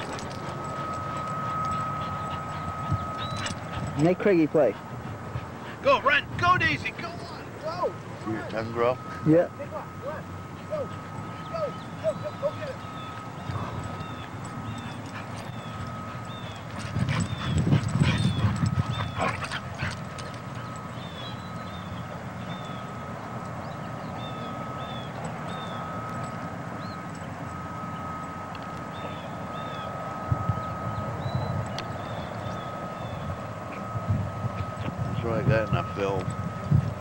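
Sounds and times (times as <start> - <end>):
thin high tone: 0.0 - 37.0
dogs scuffling and growling: 13.0 - 21.9.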